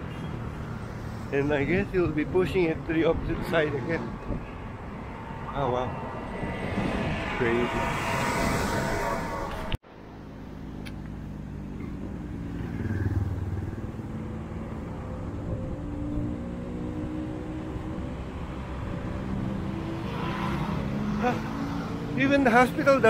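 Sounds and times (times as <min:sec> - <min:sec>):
car and motorcycle engines: 0:00.0 - 0:23.0
vehicle passing: 0:00.4 - 0:23.0.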